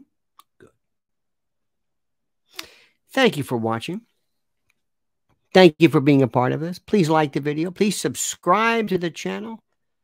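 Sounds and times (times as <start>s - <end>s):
man's sharp intake of breath: 2.5s - 3.0s.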